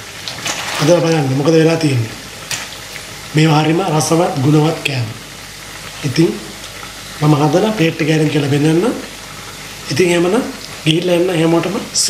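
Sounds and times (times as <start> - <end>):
hot oil sizzling in a pan: 0.0 - 12.0.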